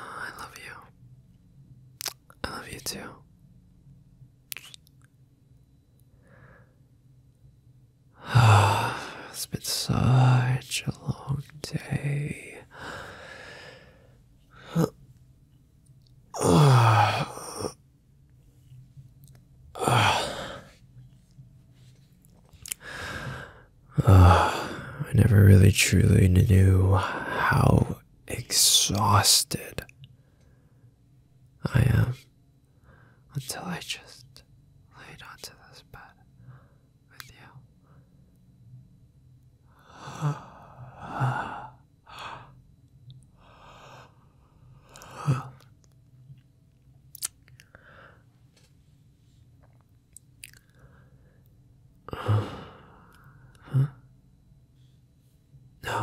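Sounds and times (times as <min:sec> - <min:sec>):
man whispering: 0:00.0 - 0:01.0, 0:02.0 - 0:03.3, 0:04.5 - 0:04.8, 0:08.3 - 0:13.0, 0:14.4 - 0:15.0, 0:16.3 - 0:17.8, 0:19.7 - 0:20.8, 0:23.9 - 0:30.0, 0:31.6 - 0:32.3, 0:33.2 - 0:36.3, 0:37.1 - 0:37.7, 0:44.9 - 0:45.7, 0:52.4 - 0:54.0, 0:55.8 - 0:56.0
man sighing: 0:08.2 - 0:09.3, 0:14.6 - 0:15.0, 0:16.4 - 0:17.7, 0:19.8 - 0:20.6, 0:52.1 - 0:54.0
breathy exhales: 0:52.1 - 0:54.0.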